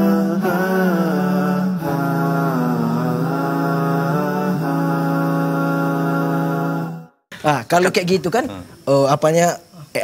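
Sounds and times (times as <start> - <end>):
chant-like vocal line: 0.0 - 7.3.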